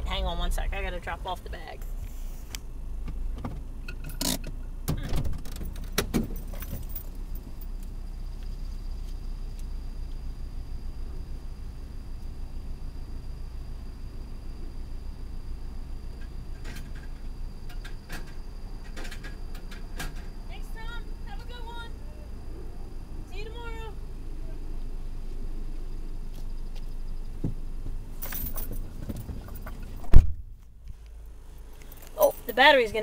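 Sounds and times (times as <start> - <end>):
car engine idling rumble: 0.0 - 33.0
rustle: 1.7 - 20.5, 24.0 - 33.0.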